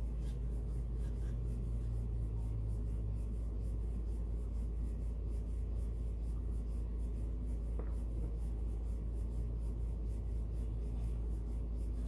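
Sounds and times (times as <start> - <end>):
paintbrush strokes on wood: 0.0 - 12.0.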